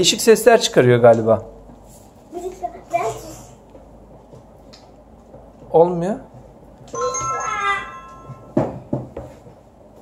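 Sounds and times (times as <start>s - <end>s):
knocks on a hard surface: 8.2s - 9.4s.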